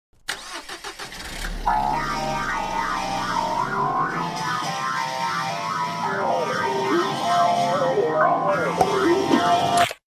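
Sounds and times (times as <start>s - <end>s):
music: 1.5s - 10.0s.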